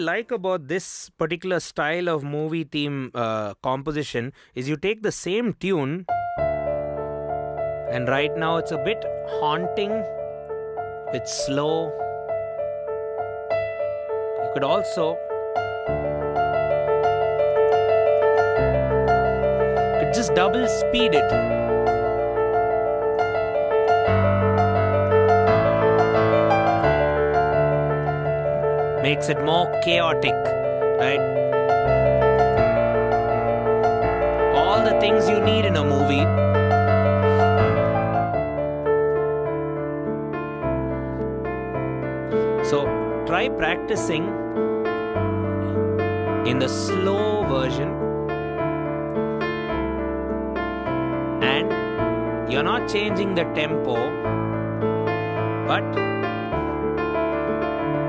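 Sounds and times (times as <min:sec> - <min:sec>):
fast piano melody: 0:05.9 - 0:58.0
low piano bass chords: 0:06.0 - 0:58.0.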